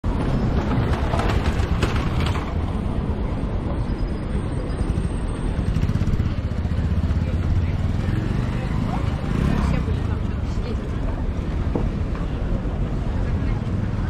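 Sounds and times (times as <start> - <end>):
motorbike moving slowly: 0.1 - 14.0.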